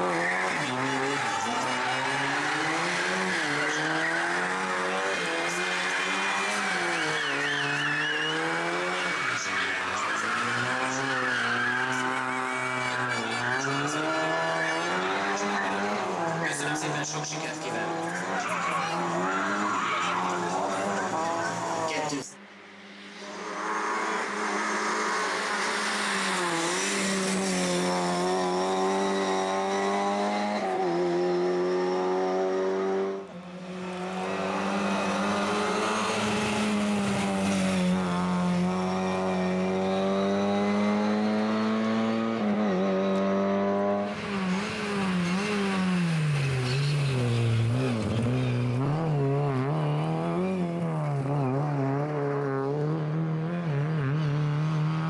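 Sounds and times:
rally car engines revving: 0.0 - 55.0.

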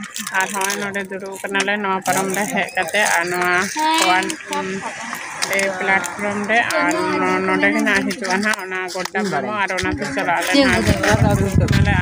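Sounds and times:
woman talking: 3.7 - 5.4, 6.7 - 8.4, 10.5 - 11.4.

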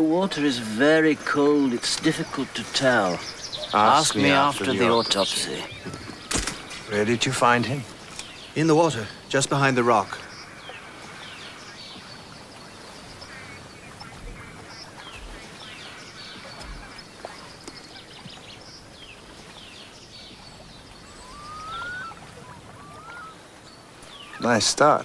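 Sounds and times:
faint open-air hiss: 0.0 - 25.0
waterbirds calling: 0.0 - 25.0.

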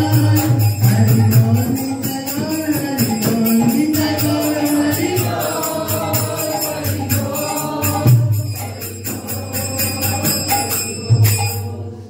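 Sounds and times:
jingling metal percussion: 0.0 - 12.0
crowd chanting: 4.0 - 12.0.

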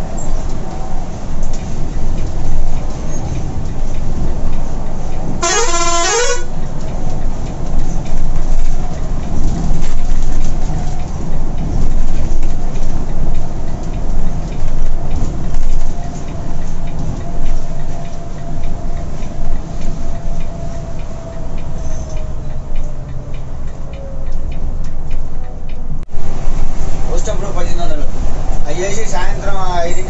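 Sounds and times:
diesel engine and road noise: 0.0 - 30.0
vehicle horn: 5.4 - 6.5.

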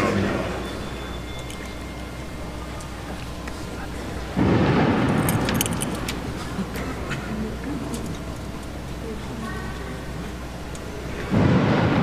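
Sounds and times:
congregation murmur: 0.0 - 12.0
light metallic jingling: 5.2 - 6.2.

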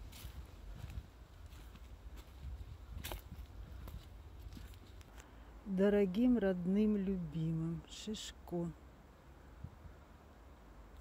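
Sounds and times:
faint footsteps: 0.0 - 5.4
steady low rumble: 0.0 - 6.8.

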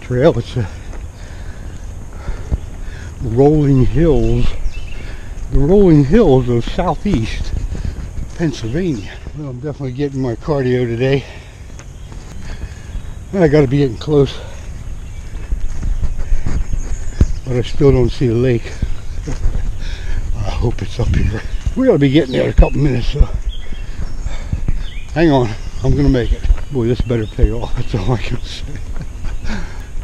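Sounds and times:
footsteps on grass: 0.0 - 30.0.

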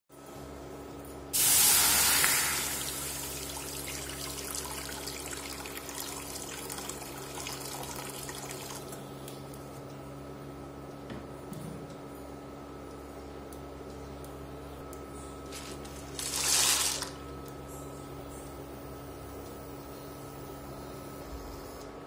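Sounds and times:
induction cooktop hum: 0.1 - 22.0.

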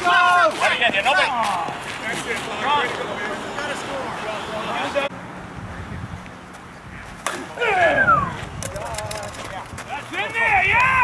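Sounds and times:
loud shouting: 0.0 - 1.8, 7.4 - 8.4, 9.9 - 11.0.

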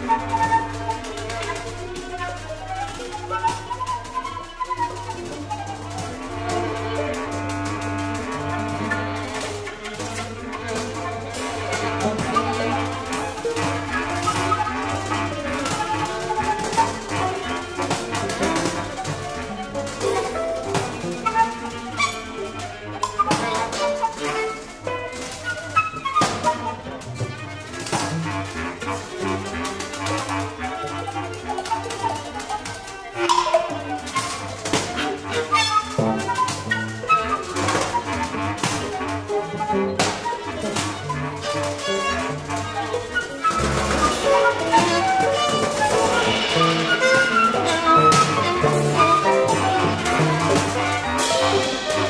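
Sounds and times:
small acoustic ensemble improvising: 0.0 - 52.0
scattered drum strikes: 43.6 - 50.5.

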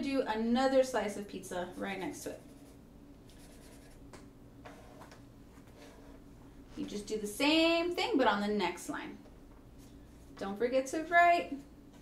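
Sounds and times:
marker pen drawing on paper: 1.7 - 4.0.

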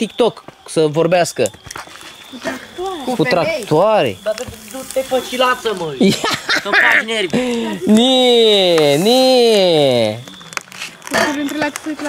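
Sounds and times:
plastic crinkling and clicking: 3.6 - 6.0, 10.2 - 12.0.

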